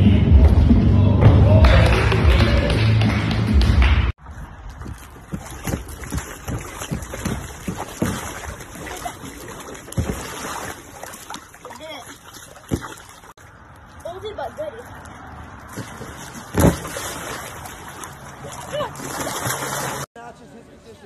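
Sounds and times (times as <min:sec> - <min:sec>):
water sloshing and splashing: 0:04.2 - 0:20.2.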